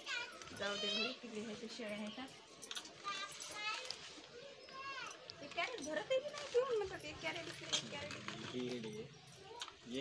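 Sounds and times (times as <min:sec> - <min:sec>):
child's high-pitched voice: 0:00.0 - 0:01.2, 0:03.0 - 0:05.2.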